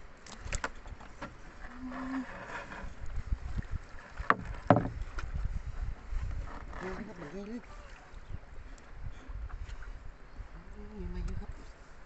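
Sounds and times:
sharp knocks on boat floor: 4.2 - 5.0.

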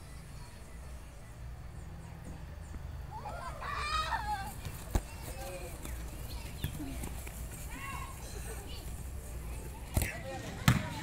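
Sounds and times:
faint indistinct voices: 0.0 - 11.0
volleyball being hit: 10.0 - 11.0.

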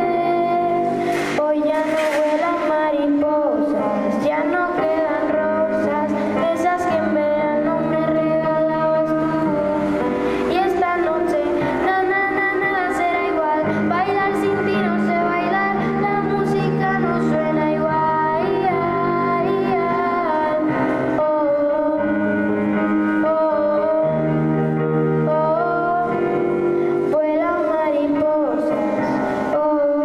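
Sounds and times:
girl singing into microphone: 0.0 - 30.0
instrumental accompaniment: 0.0 - 30.0.

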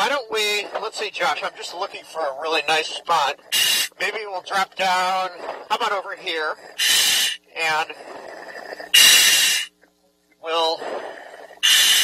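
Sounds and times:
diver breathing through regulator: 3.4 - 4.0, 6.4 - 9.7, 10.8 - 12.0
air hissing through demand valve: 3.5 - 4.0, 6.8 - 7.4, 8.9 - 9.7, 11.6 - 12.0.

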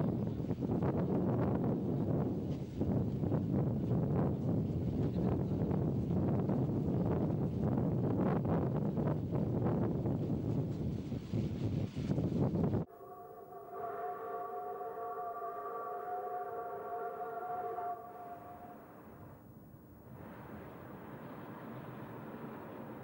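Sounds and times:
train rumbling: 0.0 - 19.5, 20.1 - 23.0
steam locomotive whistle: 12.9 - 19.4.

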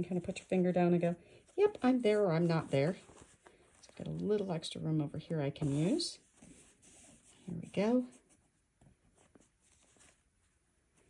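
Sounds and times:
hand rustling over fabric: 0.0 - 4.7, 5.5 - 11.0.

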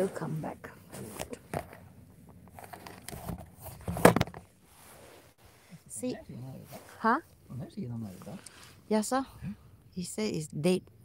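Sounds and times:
phone handling rustling and clicks: 1.2 - 4.4.

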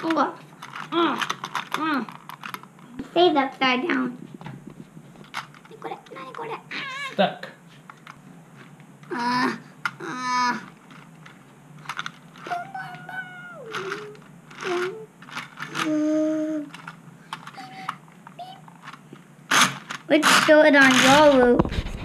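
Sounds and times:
child making vocal sounds: 5.7 - 7.2, 9.1 - 10.7, 12.5 - 15.1, 15.7 - 16.8, 17.6 - 18.7.

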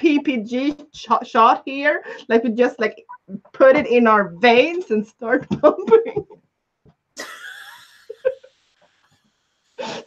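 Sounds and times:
woman wheezing laughter: 7.2 - 8.5.

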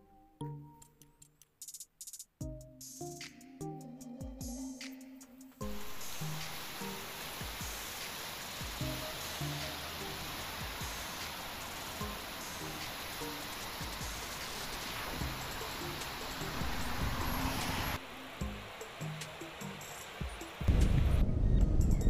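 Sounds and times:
background music: 0.0 - 22.0
river rushing: 5.7 - 21.0.

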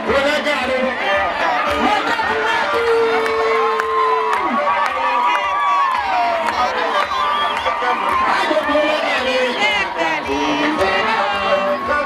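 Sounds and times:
crowd cheering: 0.0 - 12.0
dance music with low beat: 0.0 - 12.0.

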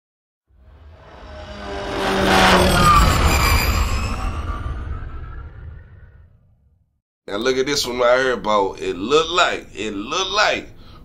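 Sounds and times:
deep rumble: 0.6 - 6.8
cinematic synthesized music: 0.7 - 6.2.

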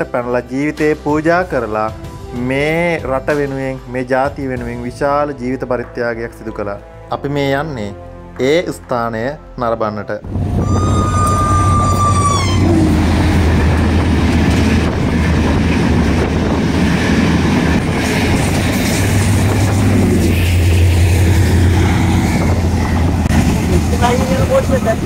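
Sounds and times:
diesel train rumbling past: 10.2 - 25.0.

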